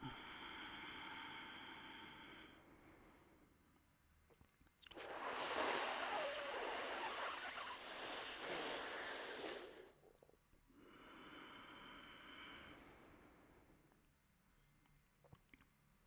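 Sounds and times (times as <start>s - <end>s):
hissing inhale through tongue: 4.9s - 10.0s
soft long exhale: 5.0s - 9.8s, 10.9s - 13.7s.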